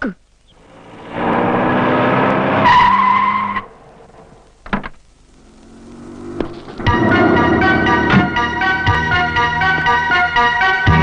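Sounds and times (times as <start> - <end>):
car engine revving: 0.5 - 10.6
tyres skidding: 0.5 - 11.0
high squeal: 6.0 - 10.2.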